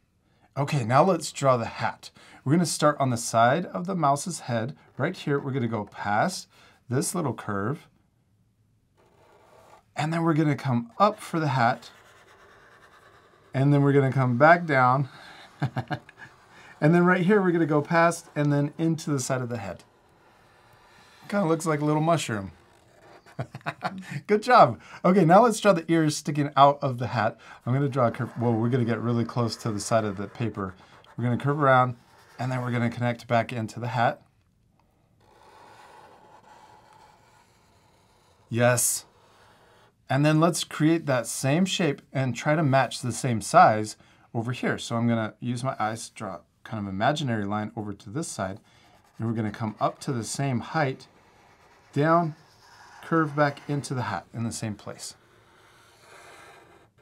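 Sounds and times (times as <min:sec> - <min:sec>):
marker scratching on paper: 0:09.0 - 0:24.1, 0:25.3 - 0:34.2, 0:34.8 - 0:40.0, 0:48.2 - 0:57.0.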